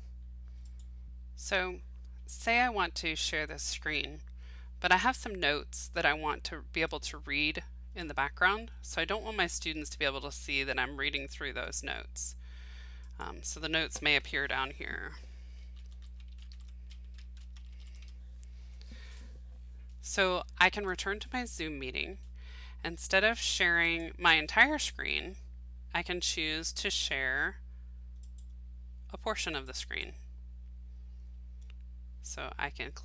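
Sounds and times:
low electrical hum: 0:00.0 - 0:33.0
computer keyboard typing: 0:15.7 - 0:18.2.

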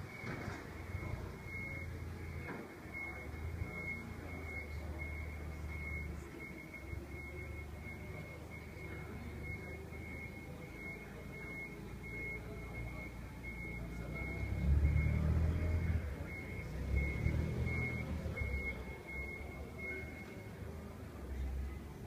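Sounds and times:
forklift engine rumble: 0:00.0 - 0:22.0
forklift warning beeps: 0:00.0 - 0:22.0.

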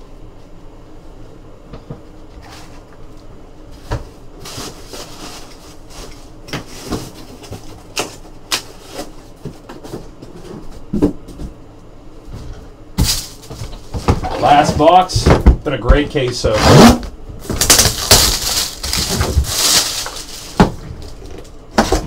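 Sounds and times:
packaging rustling: 0:17.4 - 0:21.9.

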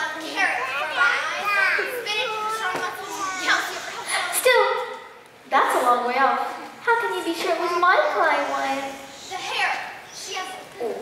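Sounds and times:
children speaking: 0:00.0 - 0:11.0.

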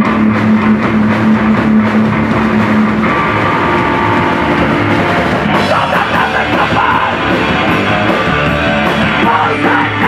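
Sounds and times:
distorted electric guitar drone: 0:00.0 - 0:10.0.

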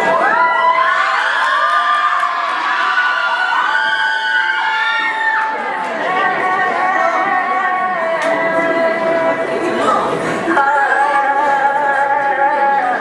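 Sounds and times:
crowd cheering and whooping: 0:00.0 - 0:06.3.

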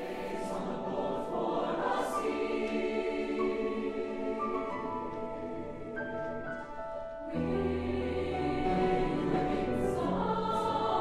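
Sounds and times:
choir singing held chords: 0:00.0 - 0:06.5, 0:07.2 - 0:11.0.

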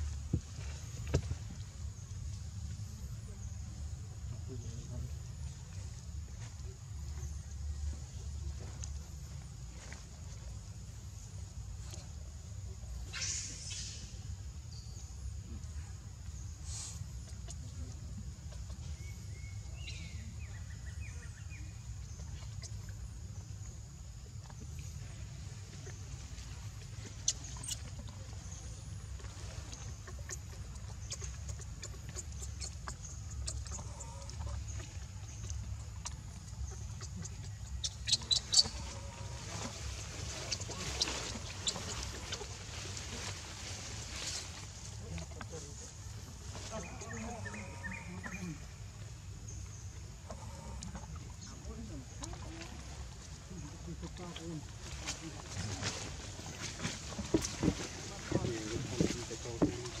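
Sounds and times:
steady outdoor background: 0:00.0 - 1:00.0
faint animal calls: 0:25.8 - 0:45.2, 0:46.5 - 0:48.8, 0:50.2 - 0:53.6.

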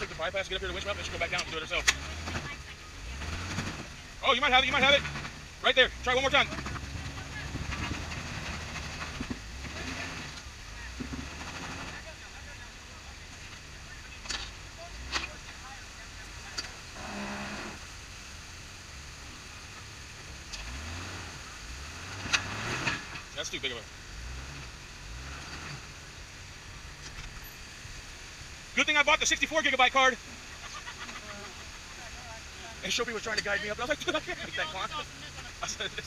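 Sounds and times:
off-road vehicle engine revving: 0:00.0 - 0:36.0.

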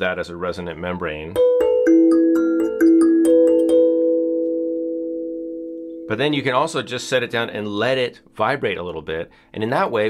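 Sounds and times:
kalimba tines plucked: 0:01.4 - 0:05.1.

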